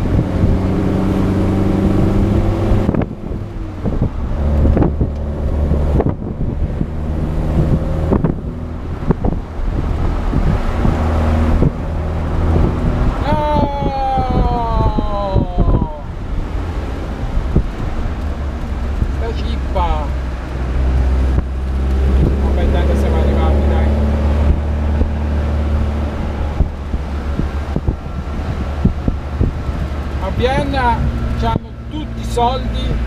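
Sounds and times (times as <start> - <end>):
car engine pulling under load: 0.0 - 33.0
wind: 0.0 - 33.0.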